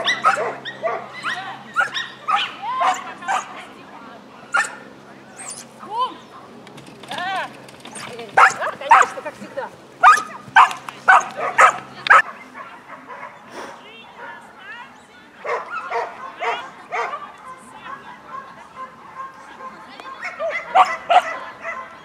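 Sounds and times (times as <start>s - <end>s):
dog barking: 0.0s - 3.5s, 4.5s - 4.8s, 8.4s - 9.2s, 10.0s - 13.4s, 15.4s - 17.3s, 17.9s - 22.0s.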